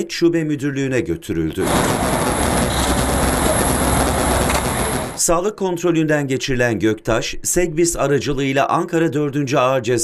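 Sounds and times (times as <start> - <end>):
dense rumbling noise: 1.6 - 5.2
faint high whine: 1.6 - 5.2
low hum: 1.6 - 5.2.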